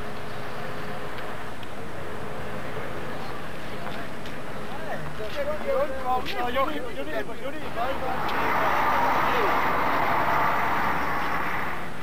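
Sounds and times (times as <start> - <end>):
crowd noise: 0.0 - 12.0
traffic rush: 0.0 - 12.0.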